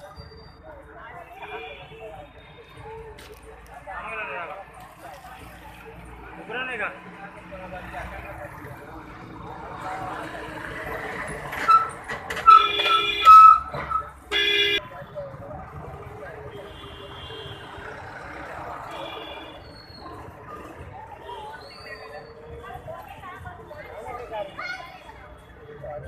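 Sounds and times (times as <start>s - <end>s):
street noise: 0.0s - 26.0s
vehicle horn honking: 12.5s - 13.7s, 14.3s - 14.8s.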